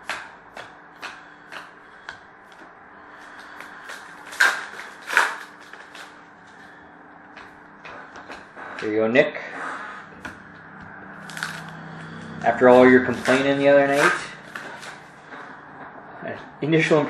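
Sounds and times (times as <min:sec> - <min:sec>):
faint steady hum: 0:00.0 - 0:17.0
loud card rustles: 0:03.3 - 0:06.8, 0:11.2 - 0:15.5.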